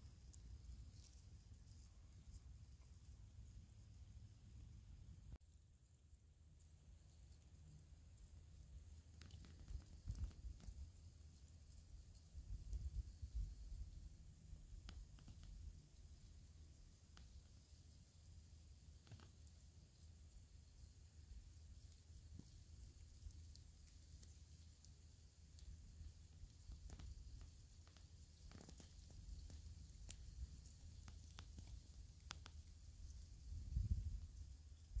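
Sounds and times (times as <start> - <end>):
faint clicks: 8.9 - 13.6, 14.8 - 15.8, 18.8 - 20.1, 21.8 - 33.4.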